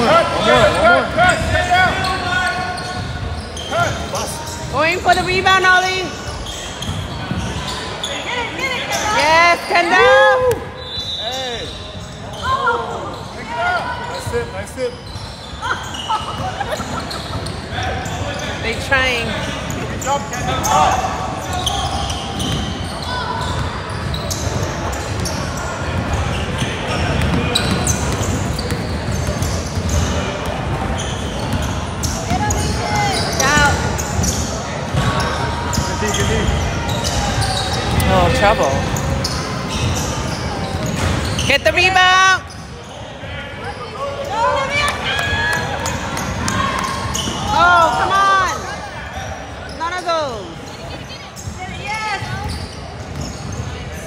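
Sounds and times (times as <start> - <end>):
echoing shouts: 7.5 - 14.2, 20.4 - 24.9, 43.5 - 50.5.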